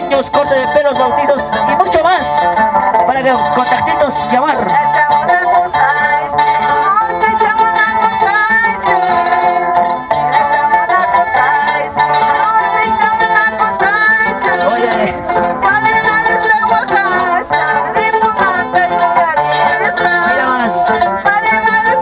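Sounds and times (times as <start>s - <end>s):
person singing: 0.0s - 22.0s
plucked string instruments: 0.0s - 22.0s.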